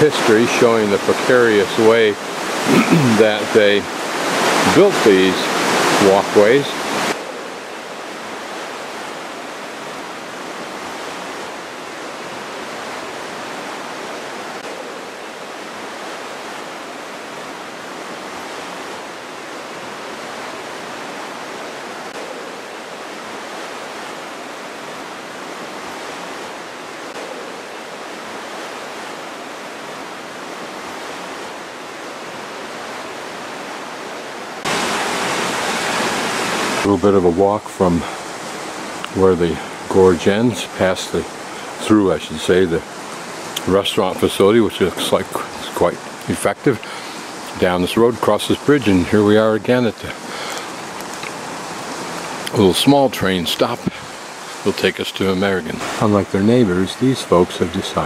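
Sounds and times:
river rushing: 0.0s - 58.0s.

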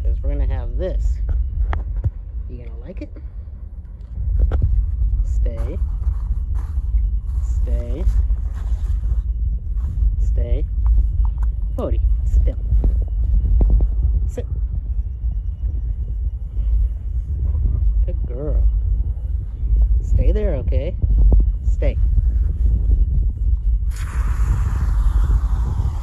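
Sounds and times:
low rumble on microphone: 0.0s - 26.0s.

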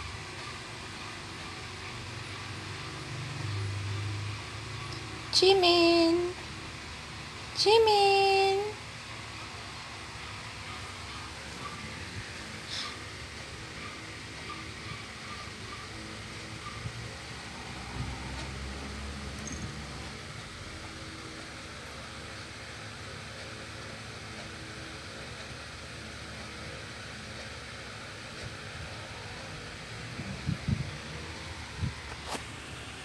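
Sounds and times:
low hum and hiss: 0.0s - 33.0s.

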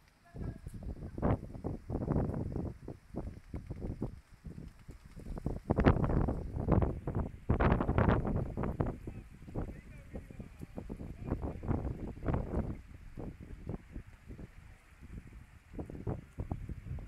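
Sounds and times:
wind buffeting microphone: 0.3s - 17.0s.

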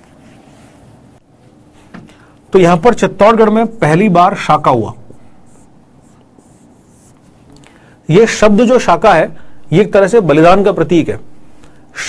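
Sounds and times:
marker scratching on whiteboard: 5.1s - 7.4s.

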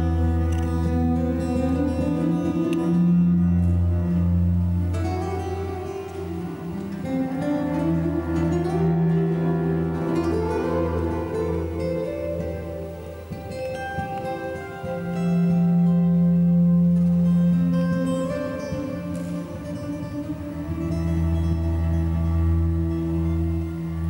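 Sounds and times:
acoustic guitar: 0.0s - 24.0s.

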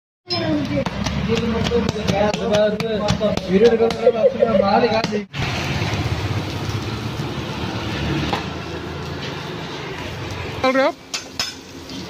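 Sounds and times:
food sizzling on a griddle: 5.4s - 12.0s.

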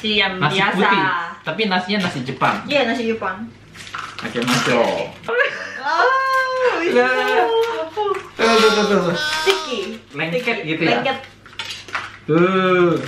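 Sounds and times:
person vocalizing sliding notes: 8.4s - 10.0s.

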